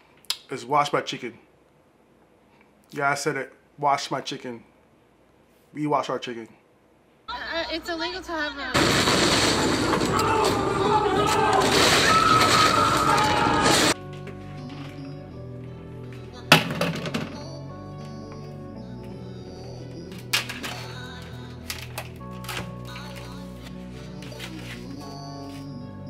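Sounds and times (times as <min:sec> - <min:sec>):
crashing and breaking: 0:08.8 - 0:14.0
shouting voices: 0:09.9 - 0:14.0.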